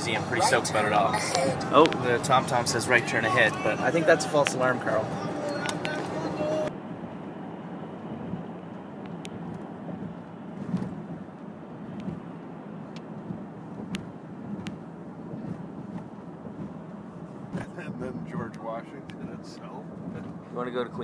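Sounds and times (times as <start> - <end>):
car engine and tyre rumble: 0.0 - 21.0.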